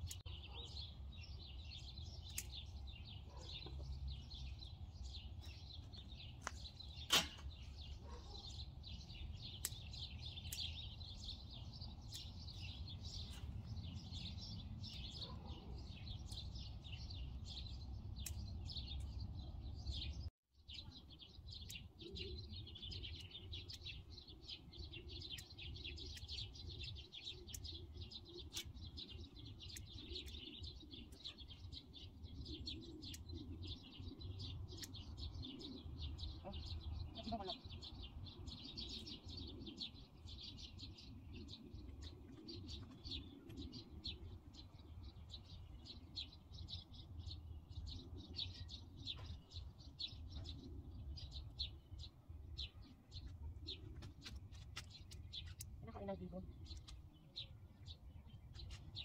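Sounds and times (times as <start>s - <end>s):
small birds chirping: 0.0s - 59.0s.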